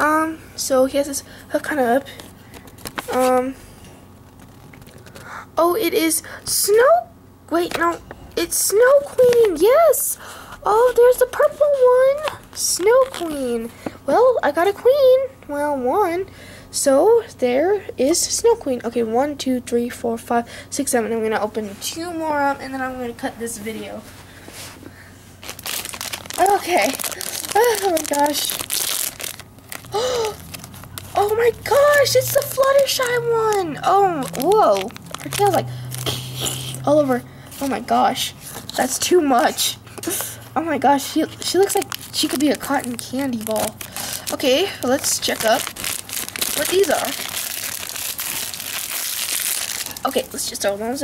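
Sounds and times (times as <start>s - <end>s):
foil packet crinkling: 2.0s - 3.4s, 4.2s - 5.3s, 10.8s - 13.6s, 25.4s - 36.5s, 41.0s - 50.7s.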